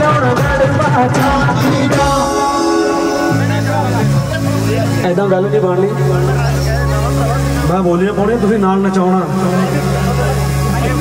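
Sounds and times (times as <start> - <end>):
man speaking through microphone: 2.9 - 11.0.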